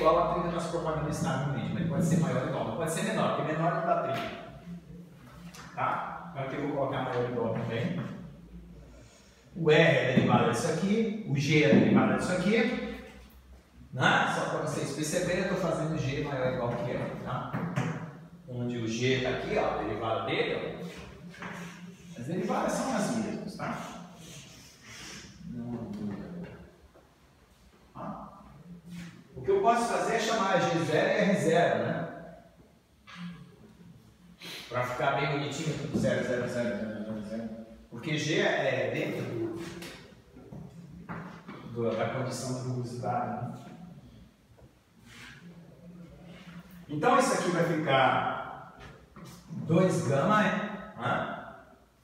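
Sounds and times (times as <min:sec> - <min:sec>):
man talking: 0:00.0 - 0:04.8, 0:05.5 - 0:08.4, 0:09.5 - 0:13.1, 0:13.8 - 0:21.1, 0:21.9 - 0:24.4, 0:25.4 - 0:26.7, 0:27.9 - 0:32.3, 0:34.6 - 0:40.1, 0:41.6 - 0:43.9, 0:46.8 - 0:51.6
man speaking: 0:00.0 - 0:08.6, 0:09.5 - 0:13.2, 0:13.8 - 0:24.5, 0:25.3 - 0:26.8, 0:27.9 - 0:32.4, 0:34.6 - 0:40.6, 0:46.8 - 0:51.7.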